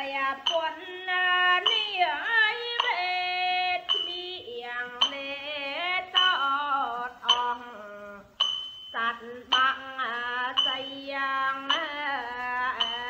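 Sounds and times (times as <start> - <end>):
musical backing: 0.0 - 13.0
person singing: 0.0 - 13.0.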